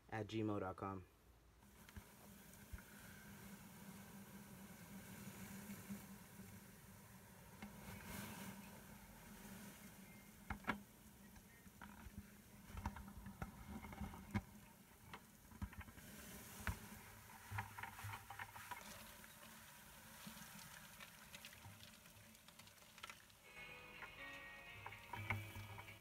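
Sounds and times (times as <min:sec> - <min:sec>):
background music: 0:23.4 - 0:26.0.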